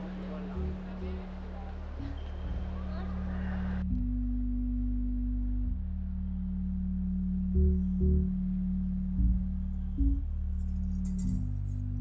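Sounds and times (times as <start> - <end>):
background music low notes: 0.0 - 12.0.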